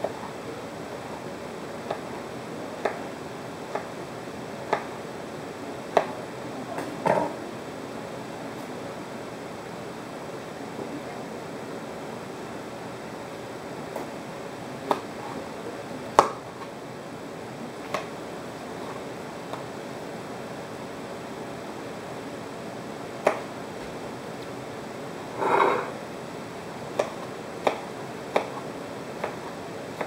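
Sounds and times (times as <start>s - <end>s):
steady hiss: 0.0s - 30.0s
brief scraping: 25.4s - 26.0s.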